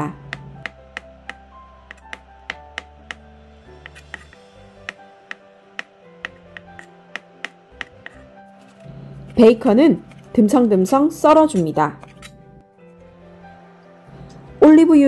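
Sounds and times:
background music: 0:00.0 - 0:15.0
knife tapping plastic cutting board: 0:00.3 - 0:03.2, 0:03.8 - 0:08.2.

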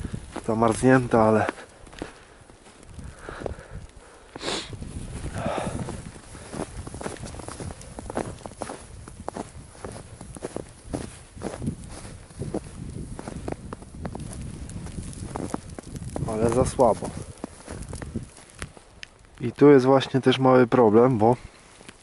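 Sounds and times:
boots trudging through snow: 0:05.2 - 0:18.5.

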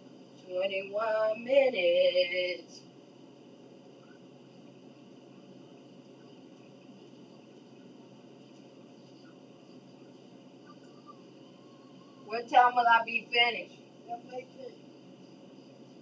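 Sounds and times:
light constant hum: 0:00.0 - 0:16.0
low hiss: 0:00.0 - 0:16.0.

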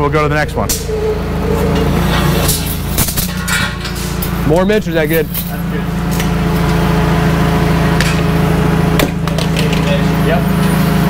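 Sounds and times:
forklift engine running: 0:00.0 - 0:11.0.

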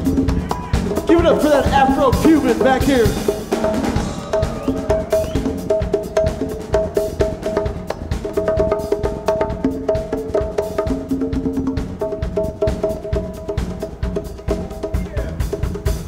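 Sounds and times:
drum kit groove: 0:00.0 - 0:16.0
live rock band playing: 0:00.0 - 0:16.0.

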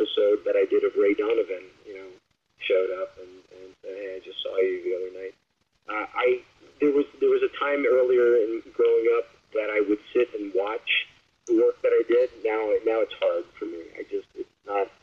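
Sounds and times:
person talking over radio: 0:00.0 - 0:05.3, 0:05.9 - 0:14.9.

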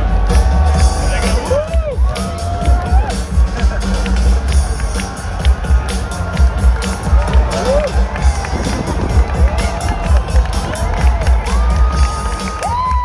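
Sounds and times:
crowd cheering: 0:00.0 - 0:13.0
music with heavy drum beat: 0:00.0 - 0:13.0
whoops: 0:01.4 - 0:03.2, 0:07.3 - 0:13.0.

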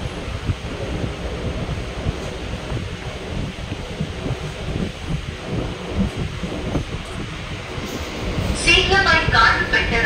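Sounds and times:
train wheels rumbling on rails: 0:00.0 - 0:10.0
wind through doorway: 0:00.0 - 0:10.0.

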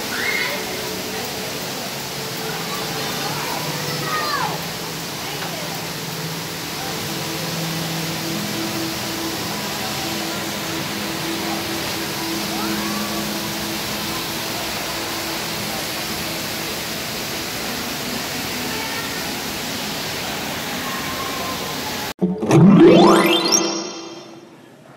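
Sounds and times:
rushing ambient hall noise: 0:00.0 - 0:22.6.

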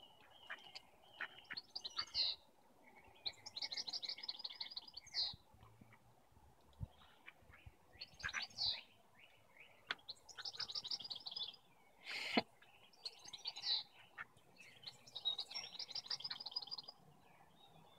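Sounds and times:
songbirds chirping and singing: 0:00.0 - 0:17.9.

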